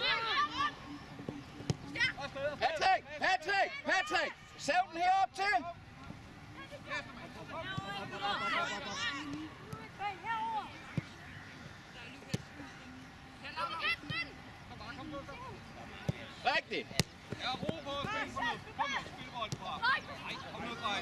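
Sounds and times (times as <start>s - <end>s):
players shouting: 6.6s - 11.3s, 17.3s - 21.0s.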